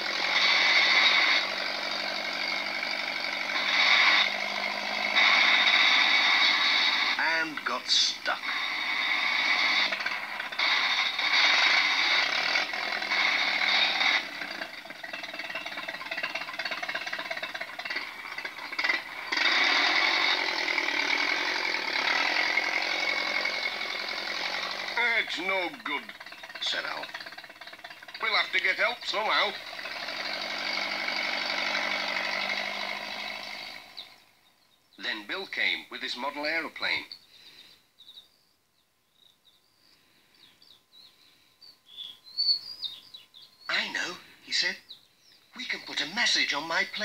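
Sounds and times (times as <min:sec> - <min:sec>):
tractor engine clattering: 0:00.0 - 0:34.2
wheels spinning in mud: 0:00.0 - 0:34.3.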